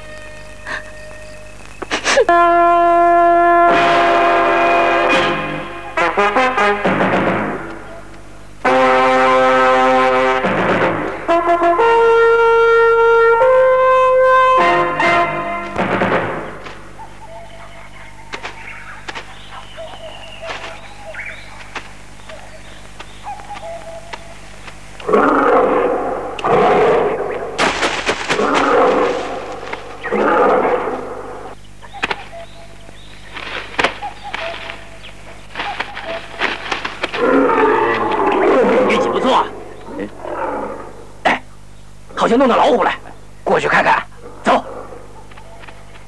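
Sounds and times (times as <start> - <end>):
tiger roaring: 25.0 - 27.6, 28.3 - 31.6, 37.1 - 41.4, 44.1 - 45.2.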